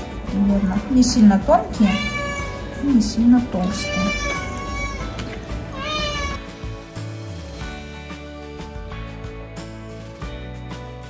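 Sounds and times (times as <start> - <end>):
background music: 0.0 - 11.0
cat meowing: 1.8 - 2.9, 3.6 - 6.4.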